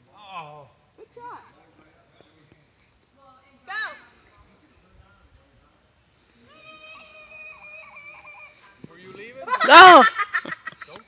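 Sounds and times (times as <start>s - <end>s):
person calling: 9.6s - 10.2s.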